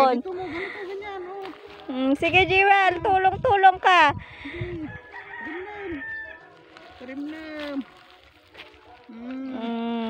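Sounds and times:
rooster crowing: 4.7s - 6.6s.

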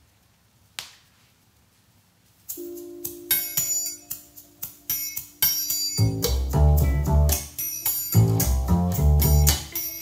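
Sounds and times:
song from vinyl record: 2.2s - 10.0s
bass and guitar: 6.0s - 7.5s, 8.2s - 9.8s.

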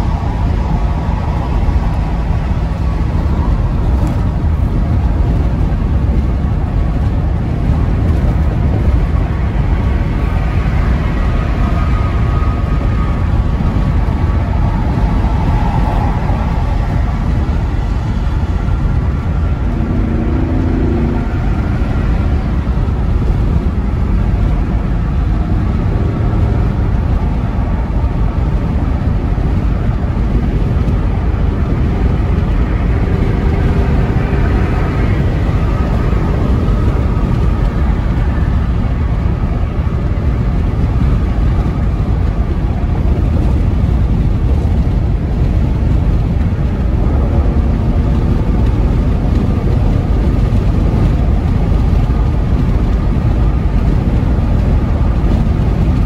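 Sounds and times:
van road and engine noise: 0.0s - 56.0s.

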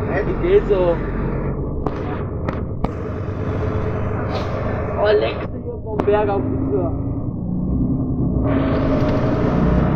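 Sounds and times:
bus engine and tyres rumbling: 0.0s - 9.9s.

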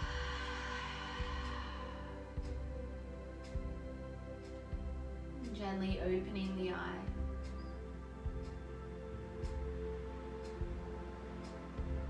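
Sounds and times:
breathy open-mouthed exhale: 0.0s - 2.6s
soft ambient music with beat: 0.0s - 12.0s.

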